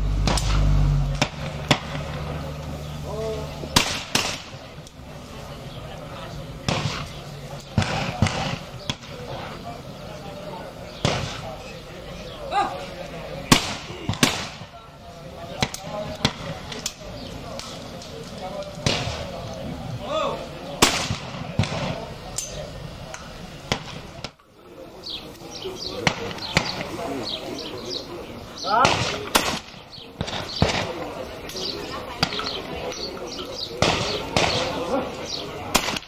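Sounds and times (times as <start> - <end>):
shotguns firing: 0.2 - 2.3, 3.7 - 4.7, 6.6 - 9.2, 11.0 - 11.6, 13.5 - 14.8, 15.5 - 16.8, 18.8 - 19.5, 20.8 - 22.2, 26.0 - 27.0, 28.8 - 31.2, 33.8 - 34.9, 35.7 - 36.0.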